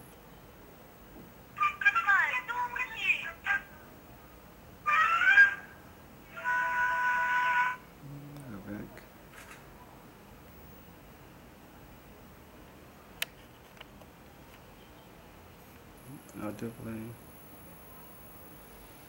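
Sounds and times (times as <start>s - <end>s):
high-pitched cartoon voices: 4.8s - 8.3s.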